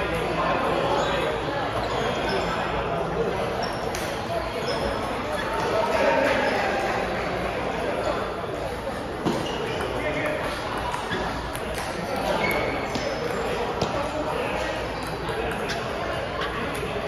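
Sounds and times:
voices murmuring: 0:00.0 - 0:17.0.

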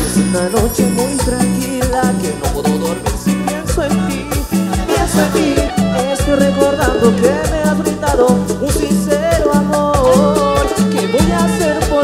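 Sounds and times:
live cumbia band playing: 0:00.0 - 0:12.0.

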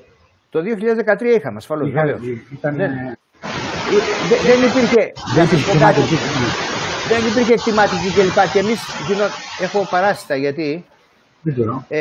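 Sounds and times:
loud static hiss: 0:00.0 - 0:12.0.

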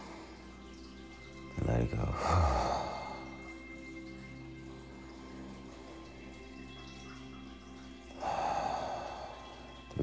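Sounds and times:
music of sustained notes: 0:00.0 - 0:10.0.

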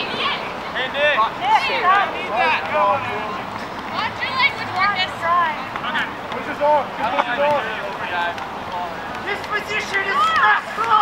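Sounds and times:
people shouting on sports field: 0:00.0 - 0:11.0.

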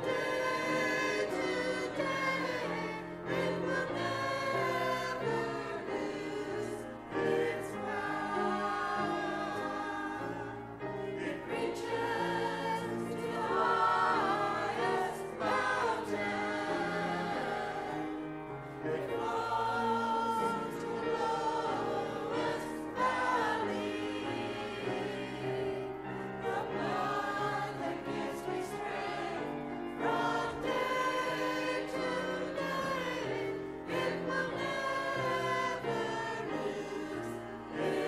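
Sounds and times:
choir singing sustained notes: 0:00.0 - 0:38.0.

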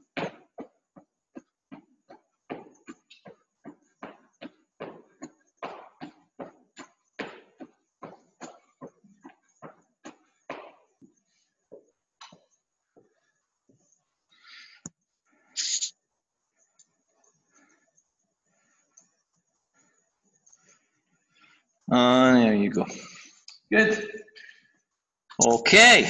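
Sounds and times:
feet hopping on gym floor: 0:00.0 - 0:13.8.

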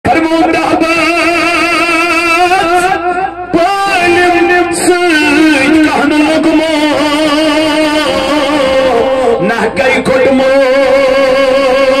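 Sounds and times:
man chanting a held note: 0:00.1 - 0:12.0.

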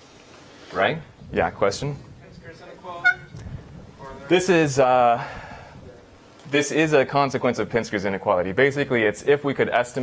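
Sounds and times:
short high-pitched sound: 0:03.0 - 0:03.4.

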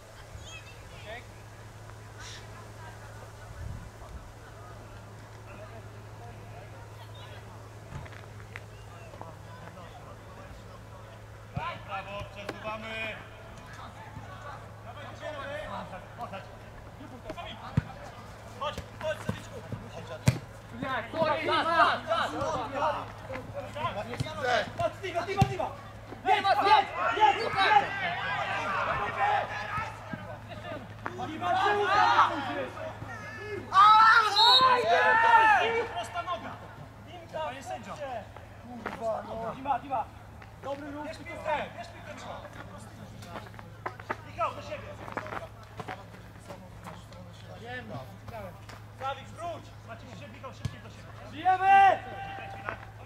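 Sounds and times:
footballers shouting: 0:04.5 - 0:43.1, 0:48.8 - 0:53.0
football being kicked: 0:18.7 - 0:20.5, 0:24.1 - 0:25.6.

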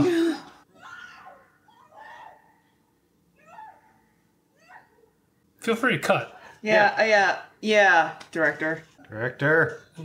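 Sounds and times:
faint high-pitched cries: 0:00.0 - 0:02.8, 0:03.4 - 0:05.2.

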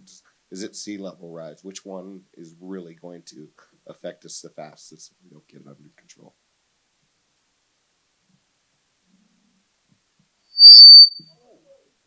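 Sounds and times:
microphone feedback squeal: 0:10.6 - 0:11.2.

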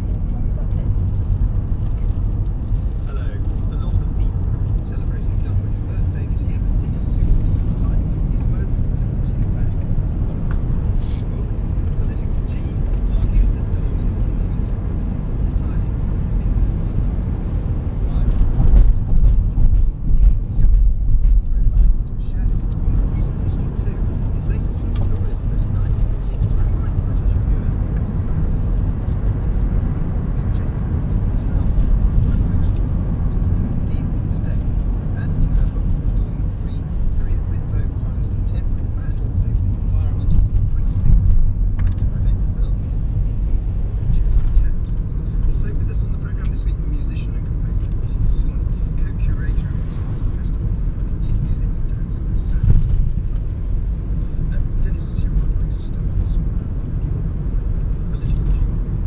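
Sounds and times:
car engine and tyre rumble: 0:00.0 - 0:59.0
faint radio talk: 0:00.0 - 0:59.0.

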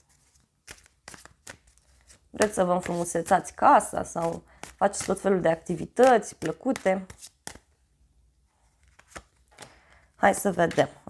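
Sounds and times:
cards being shuffled: 0:00.0 - 0:07.8, 0:08.6 - 0:11.0.

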